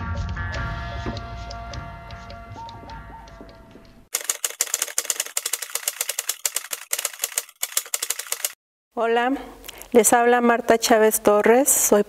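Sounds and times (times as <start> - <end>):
typewriter key strikes: 4.2 - 8.6.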